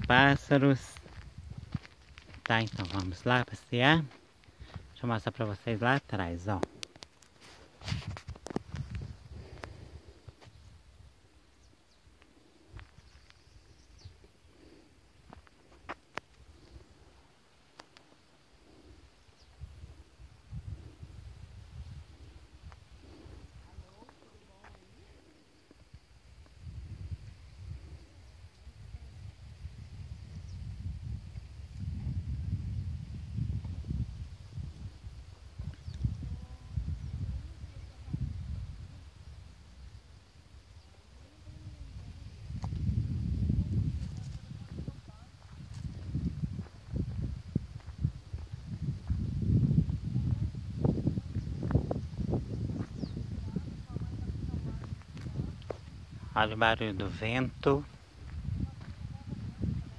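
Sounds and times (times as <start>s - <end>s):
footsteps on dirt track: 0.0s - 5.0s, 15.2s - 16.8s, 43.9s - 50.4s, 52.6s - 56.2s, 57.8s - 59.9s
wind rumbling on microphone: 0.0s - 59.9s
faint bird chirps: 10.5s - 14.4s, 19.1s - 19.7s, 52.7s - 53.3s.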